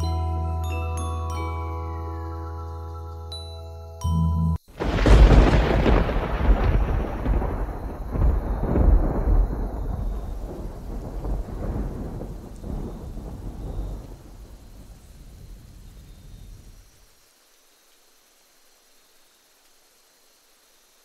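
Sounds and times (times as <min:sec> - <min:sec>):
rolling thunder: 0:04.7 - 0:16.8
rain hissing: 0:04.7 - 0:21.0.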